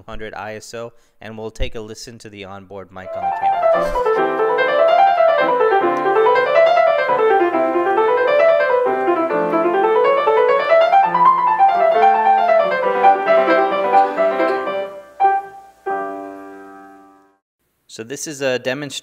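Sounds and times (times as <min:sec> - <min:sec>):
grand piano fast runs: 0:03.1 - 0:17.1.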